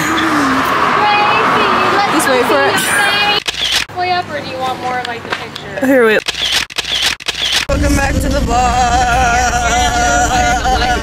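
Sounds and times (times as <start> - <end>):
sharp clicks: 3.4 - 3.9, 5.0 - 7.7.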